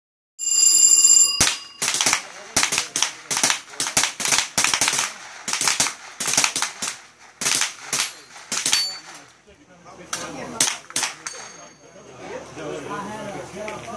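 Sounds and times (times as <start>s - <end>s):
rapid rifle shots: 1.4s - 9.2s, 10.1s - 11.5s.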